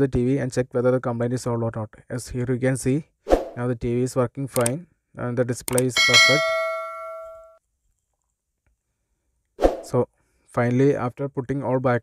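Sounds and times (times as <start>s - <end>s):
bell-like ding: 5.9s - 7.6s.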